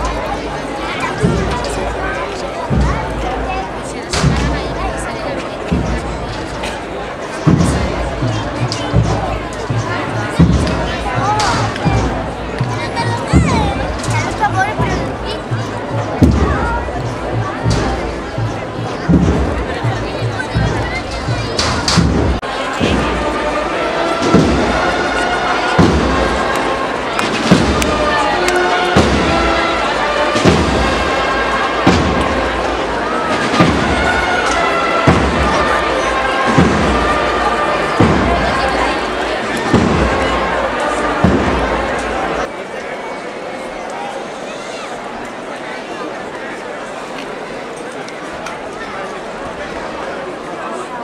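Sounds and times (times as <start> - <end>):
crowd murmur: 0.0 - 51.0
deep bass drum beats: 1.1 - 5.1, 5.7 - 6.6, 7.4 - 23.3, 24.2 - 25.0, 27.2 - 28.3, 28.9 - 29.6, 30.3 - 31.2, 31.8 - 40.4, 41.2 - 42.5.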